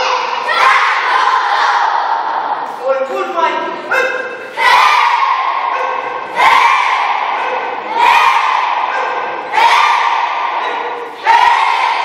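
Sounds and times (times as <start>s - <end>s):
children shouting in unison: 0.0s - 2.4s, 3.8s - 12.0s.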